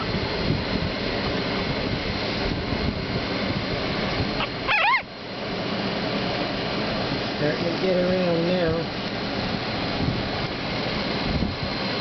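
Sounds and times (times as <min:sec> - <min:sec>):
puppy squeaking: 0:04.4 - 0:05.1.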